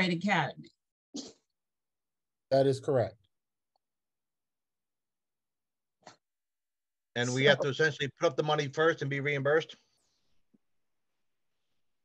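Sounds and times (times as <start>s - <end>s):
person speaking: 7.2s - 8.0s.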